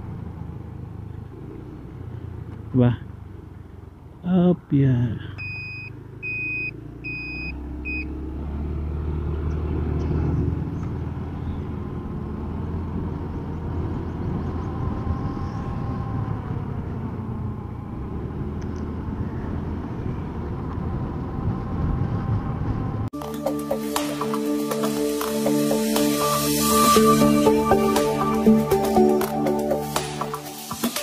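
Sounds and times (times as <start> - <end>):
motorcycle engine running: 0.0 - 4.3
wind and road noise: 0.0 - 23.2
high repeating beep: 5.4 - 8.1.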